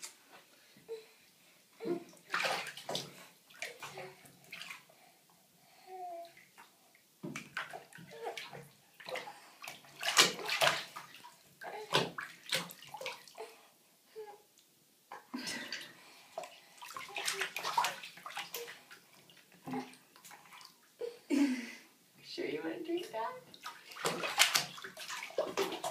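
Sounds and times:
bathwater splashing in a tub: 2.1 - 4.9, 6.4 - 13.4, 15.4 - 20.9, 23.0 - 25.9
hands slapping water surface: 9.7 - 11.0, 23.9 - 25.9.

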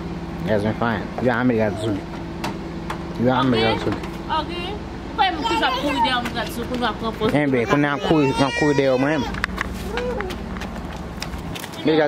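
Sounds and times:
footsteps clicks: 9.3 - 11.9.

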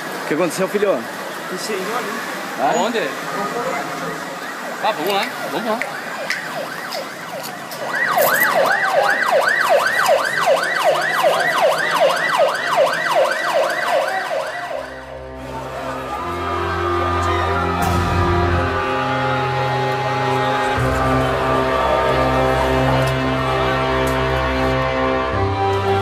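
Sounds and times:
ambulance siren yelping: 1.0 - 26.0
sombre music: 14.7 - 26.0.

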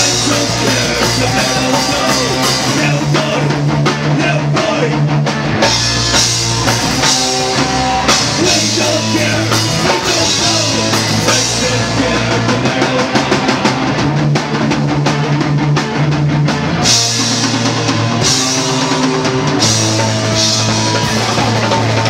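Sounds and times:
dense drum hits: 0.0 - 3.9
punk rock band playing live: 0.0 - 22.0.

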